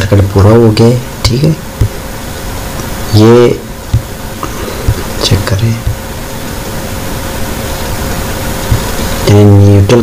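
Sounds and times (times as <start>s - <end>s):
even hiss: 0.0s - 10.0s
faint steady hum: 0.0s - 10.0s.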